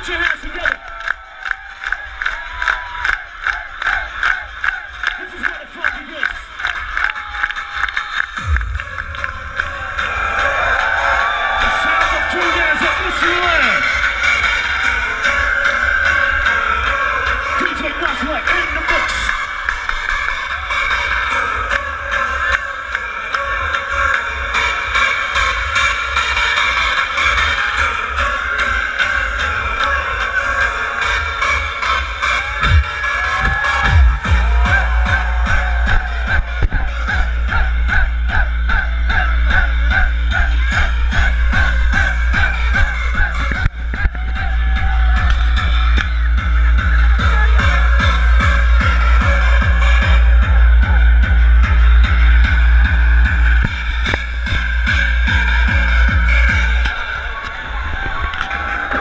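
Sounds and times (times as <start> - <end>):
hardstyle dance music: 0.0 - 59.0
heavy kick drum beat: 32.6 - 56.8.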